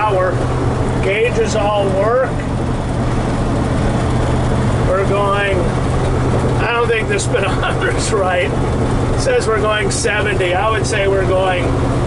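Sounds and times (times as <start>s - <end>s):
pickup engine drone in cab: 0.0s - 12.0s
road noise: 0.0s - 12.0s.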